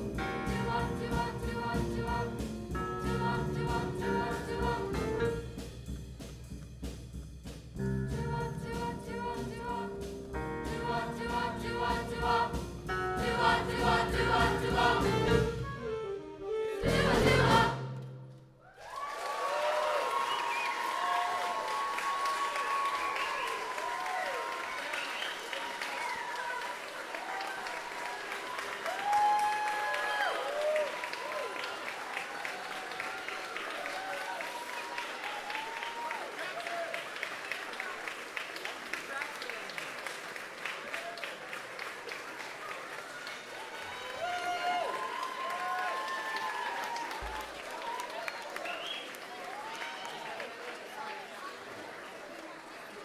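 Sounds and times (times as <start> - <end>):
choir and band final chord: 0.0 - 5.7, 8.0 - 18.4
audience applause and cheers: 18.5 - 53.0.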